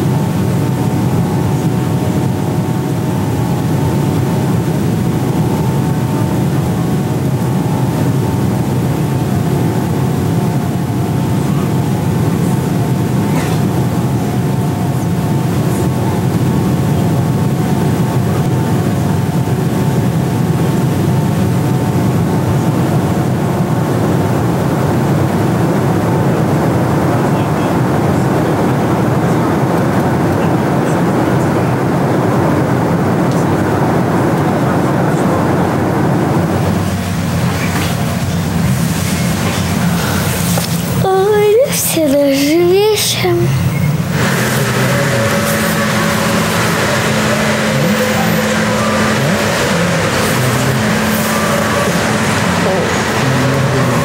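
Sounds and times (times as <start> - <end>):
airliner cabin engine rush: 0.0 - 54.0
faint steady hum of tones: 0.0 - 54.0.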